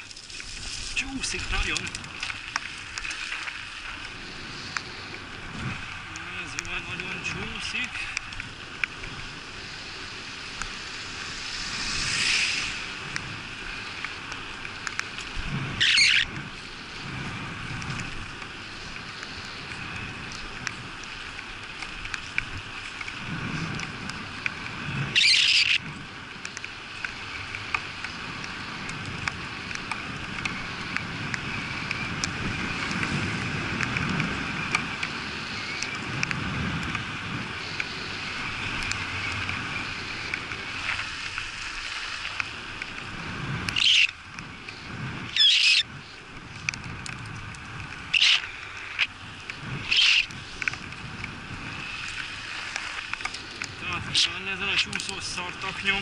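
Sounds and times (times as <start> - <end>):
bicycle tyres hissing on wet asphalt: 0.0 - 56.0
wind on microphone: 0.0 - 56.0.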